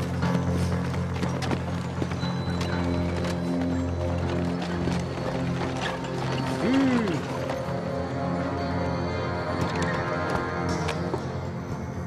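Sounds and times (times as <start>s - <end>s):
horse hooves clopping: 0.0s - 7.8s
wooden cart rattling and creaking: 0.0s - 8.4s
background music: 0.0s - 12.0s.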